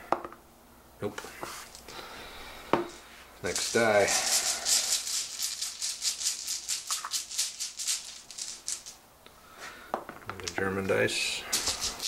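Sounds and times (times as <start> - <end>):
dice rattling in container: 3.5 - 9.0, 11.5 - 12.0.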